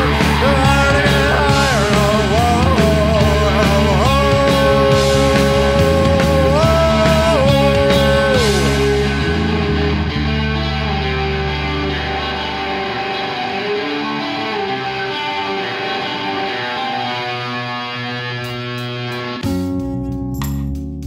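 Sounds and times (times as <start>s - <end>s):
low bass: 0.0s - 13.0s, 19.4s - 21.0s
electric guitar notes: 0.0s - 21.0s.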